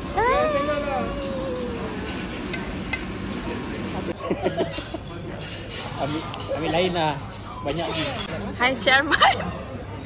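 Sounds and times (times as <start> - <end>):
long high-pitched cry: 0.2 - 2.1.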